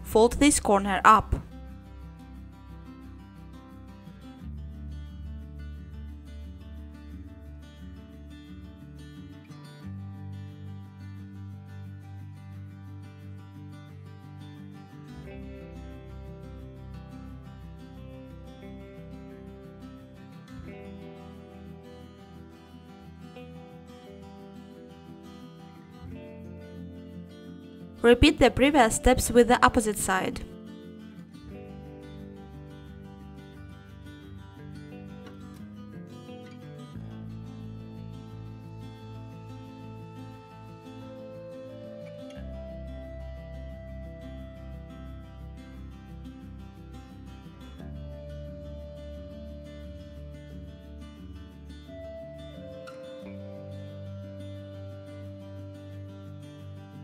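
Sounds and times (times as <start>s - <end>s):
quiet guitar music: 0.0s - 57.0s.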